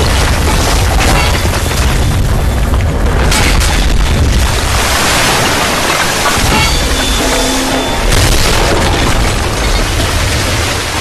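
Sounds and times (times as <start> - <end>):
deep booming rumble: 0.0 - 11.0.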